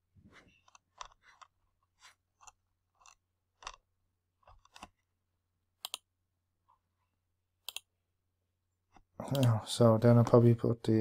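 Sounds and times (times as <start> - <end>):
computer mouse clicks: 0.5 - 3.8, 4.4 - 5.0, 5.8 - 6.1, 7.6 - 7.9, 8.9 - 9.6.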